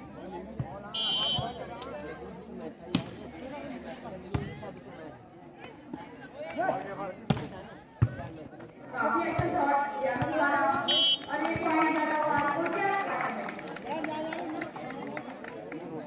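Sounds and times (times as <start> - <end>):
spectators chatter: 0.0 - 16.0
referee whistle: 1.0 - 1.6, 10.8 - 11.3.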